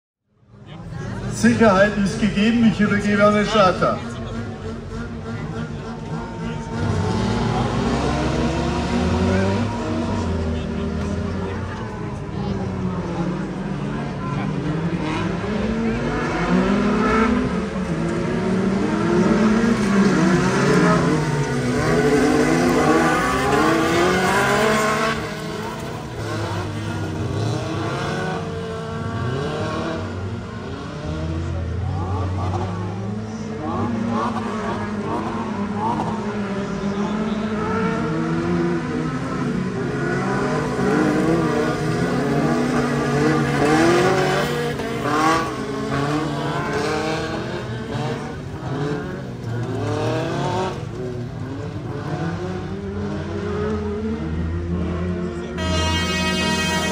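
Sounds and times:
race car engines revving: 0.3 - 56.9.

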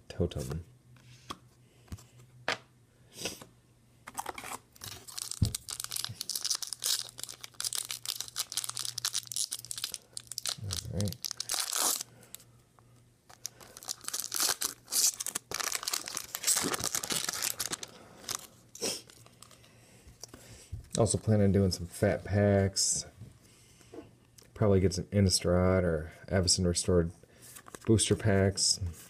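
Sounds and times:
foil wrapper tearing and crinkling: 4.2 - 12.1, 13.3 - 19.4.

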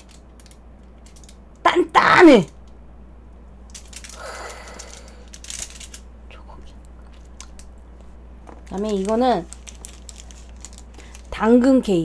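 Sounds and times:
soft rustle: 6.5 - 11.4.

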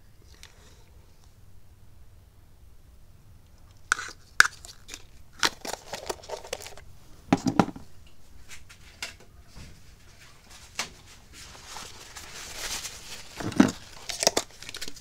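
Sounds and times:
light clicks taps and crinkles: 3.4 - 6.9, 8.0 - 15.0
knocks: 7.3 - 7.8.

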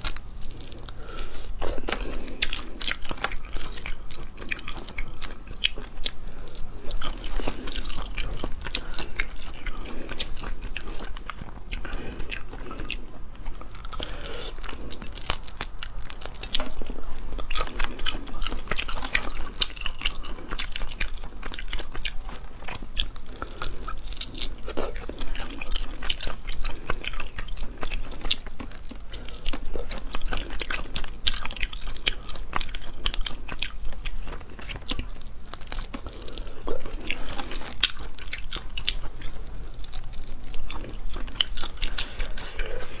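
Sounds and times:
close chewing and mouth smacks: 0.0 - 43.0.

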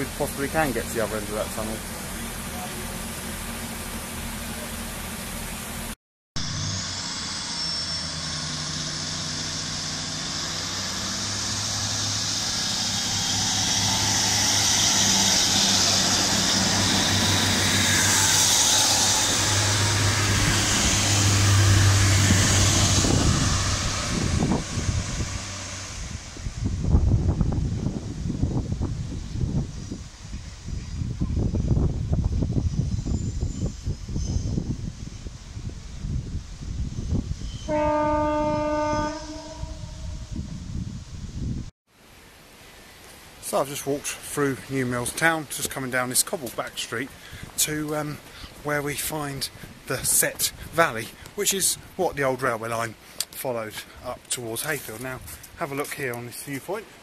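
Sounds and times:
diesel train engine humming: 0.0 - 41.6.

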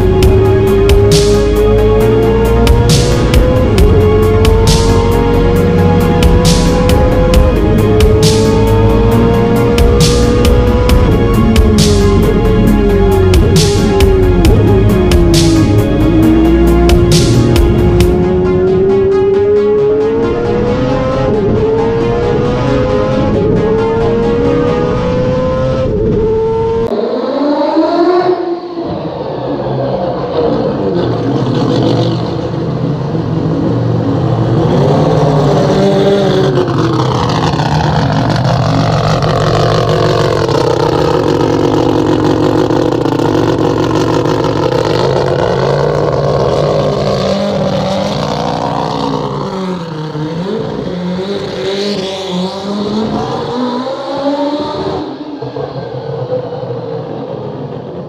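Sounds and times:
rotary race car engine revving: 0.0 - 58.0.

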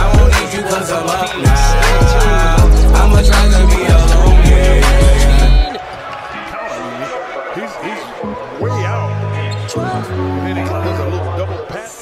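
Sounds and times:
low bass music: 0.0 - 0.4, 1.5 - 5.7
crowd noise: 0.0 - 12.0
commentator talking: 5.6 - 12.0.

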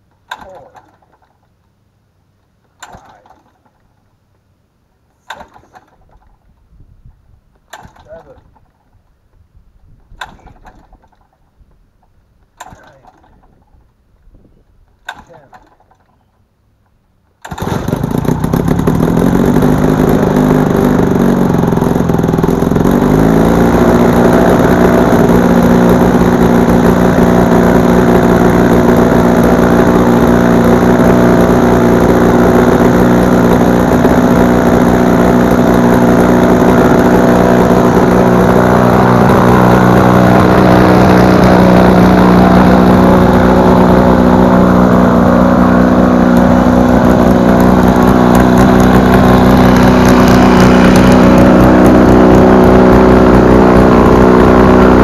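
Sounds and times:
two-stroke aircraft engine running: 0.2 - 1.3, 2.8 - 3.8, 5.2 - 6.5, 7.6 - 8.8, 10.0 - 11.4, 12.6 - 13.8, 15.0 - 16.3, 17.4 - 55.0
propeller knocks: 2.7 - 3.9, 5.2 - 6.6, 7.5 - 14.0, 14.8 - 16.2.

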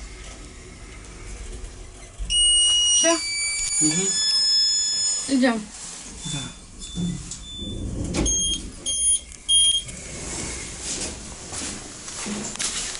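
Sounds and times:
short electronic beeps: 2.3 - 5.5, 6.2 - 9.9
high electronic beeps: 2.3 - 5.6, 8.3 - 9.8.

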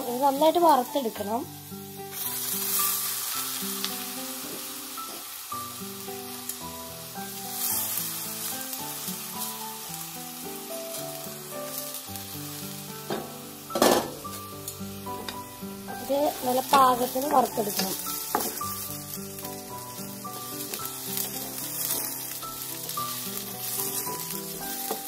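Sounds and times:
rice grains pattering into pan: 0.0 - 25.0
slow melodic background music: 0.0 - 25.0.

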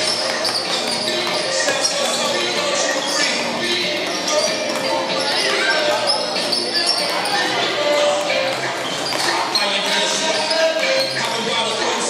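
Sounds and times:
basketballs bouncing on hardwood floor: 0.0 - 11.6
chatter of voices: 0.0 - 12.0.

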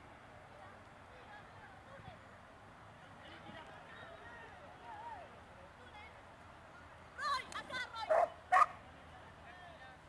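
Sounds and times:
dog barking loudly: 8.1 - 8.8.

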